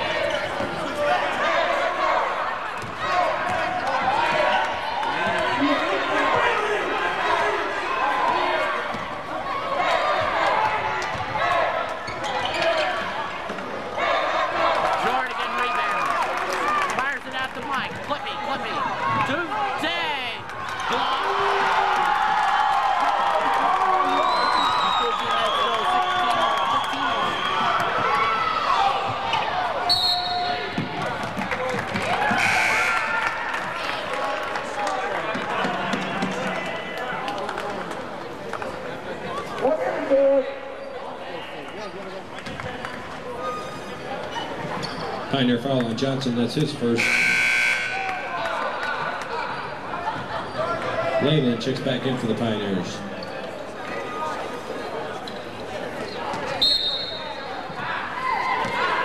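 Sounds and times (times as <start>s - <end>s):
voices and shouts: 0.0s - 37.4s.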